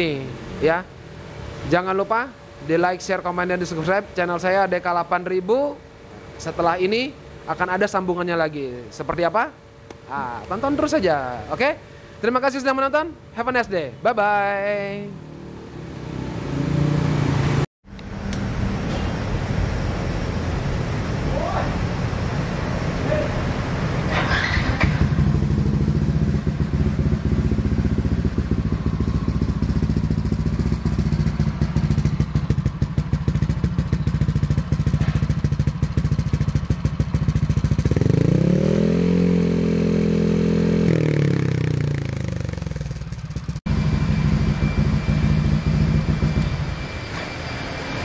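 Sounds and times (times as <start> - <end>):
scooter engine idling and revving: 14.5 - 47.2.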